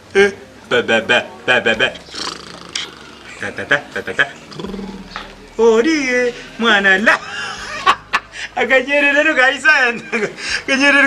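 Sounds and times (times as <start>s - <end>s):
man making wordless vocal sounds: 1.6s - 7.3s.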